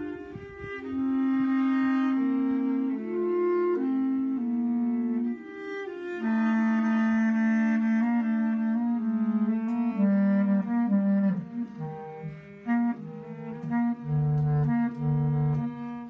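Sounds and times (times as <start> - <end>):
bass clarinet held notes: 0.0 - 16.0
bowed cello: 0.0 - 16.0.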